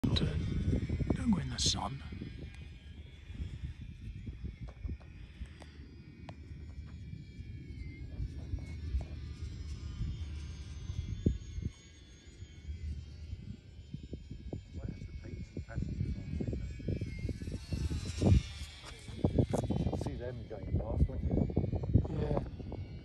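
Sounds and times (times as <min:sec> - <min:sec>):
model plane motors whining: 0:00.0 - 0:23.0.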